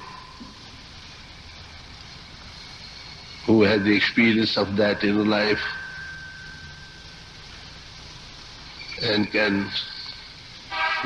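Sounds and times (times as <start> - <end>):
low hum: 0.0 - 10.7
recording hiss: 0.0 - 11.0
faint thin high tone: 3.5 - 7.7.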